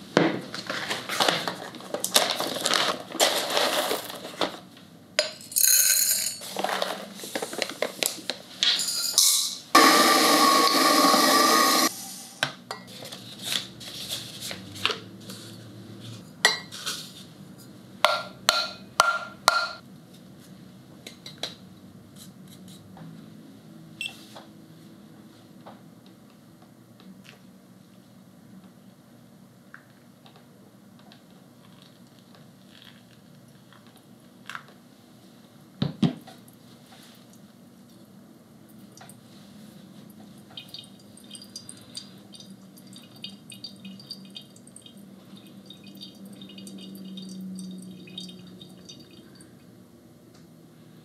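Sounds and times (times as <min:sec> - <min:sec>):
ceramic and glass clinking: 0:45.6 - 0:49.4.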